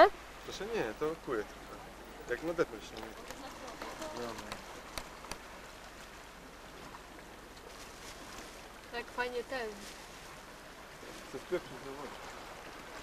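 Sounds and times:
steady low hiss: 0:00.0 - 0:03.3.

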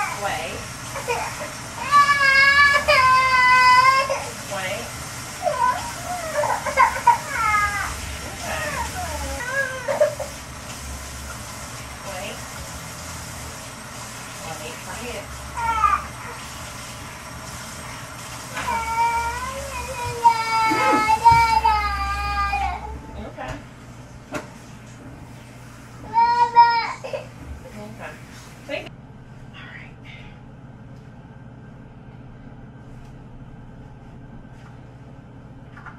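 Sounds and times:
kitchen tap running: 0:00.0 - 0:28.9
toddler whining and crying: 0:01.0 - 0:04.3, 0:05.4 - 0:10.3, 0:15.5 - 0:16.4, 0:18.6 - 0:23.1, 0:26.0 - 0:27.3.

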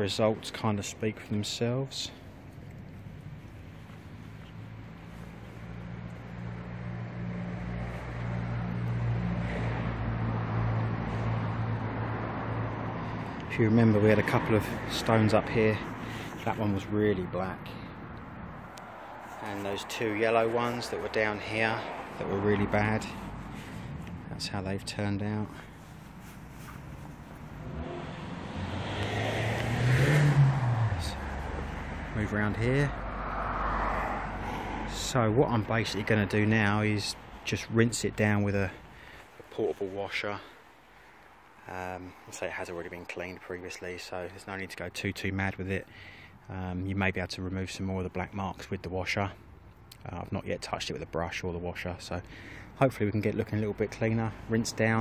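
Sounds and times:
vehicle passing: 0:02.0 - 0:43.4
engine humming: 0:02.2 - 0:42.6.

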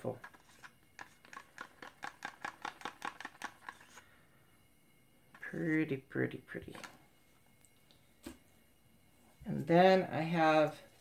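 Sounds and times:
stick scraping and tapping plastic cup: 0:00.0 - 0:04.0.

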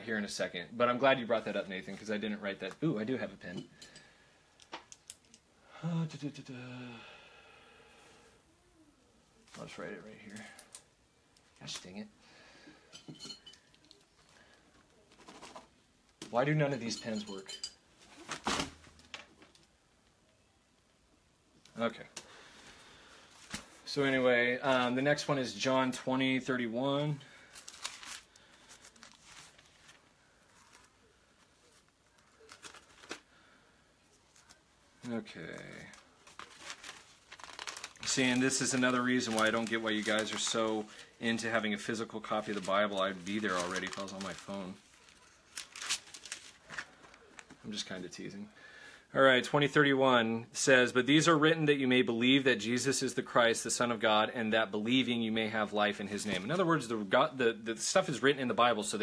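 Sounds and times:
faint steady rustle: 0:21.6 - 0:48.3
book pages turning: 0:27.5 - 0:33.3, 0:34.2 - 0:47.8.

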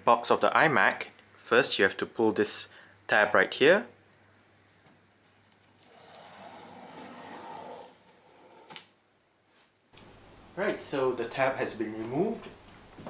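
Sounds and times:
cardboard tear strip ripping: 0:05.5 - 0:08.9.

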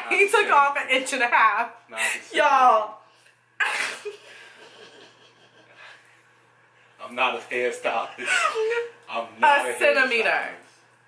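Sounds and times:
woman laughing: 0:03.6 - 0:05.9, 0:08.2 - 0:09.0.

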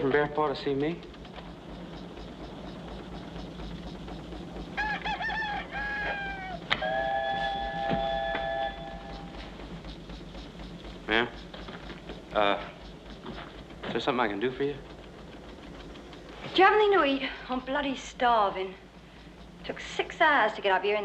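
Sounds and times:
bird-like animal calls: 0:01.0 - 0:18.0.

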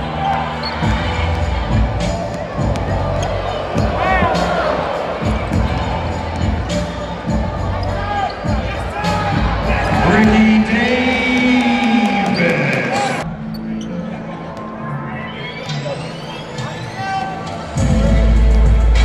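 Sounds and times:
arena crowd noise: 0:00.0 - 0:19.0
music: 0:00.0 - 0:19.0.

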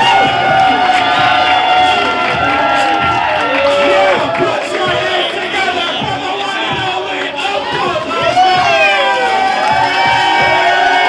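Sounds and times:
crowd cheering and whooping: 0:00.0 - 0:11.0
pop song with singing: 0:00.0 - 0:11.0.

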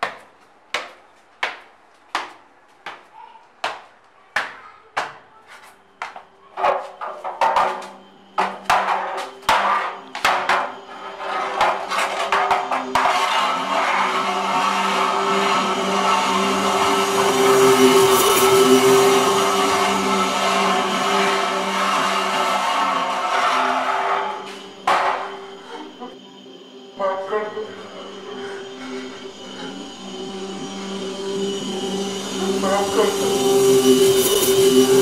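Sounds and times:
sharp irregular knocks: 0:00.0 - 0:03.0
low droning film music: 0:05.8 - 0:35.0
dense rushing swell: 0:12.9 - 0:25.6, 0:27.6 - 0:35.0.

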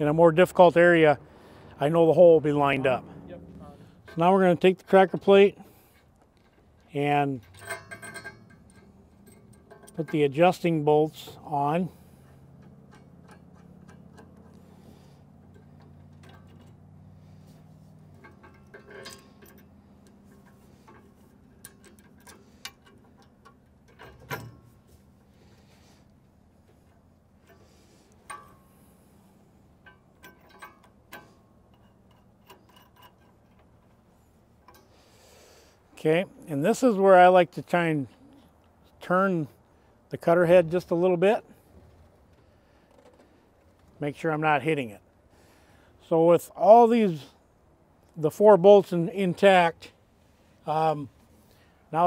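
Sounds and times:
low steady hum: 0:00.0 - 0:52.0
metallic clicks of bolts: 0:29.7 - 0:34.0.

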